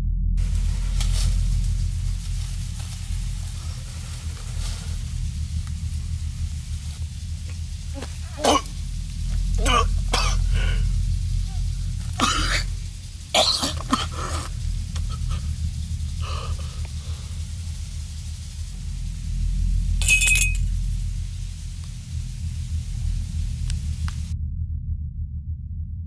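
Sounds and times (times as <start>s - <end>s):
steady low rumble: 0.0s - 26.0s
man coughing and choking: 8.4s - 8.7s, 9.6s - 10.8s, 12.2s - 12.7s, 13.4s - 15.4s.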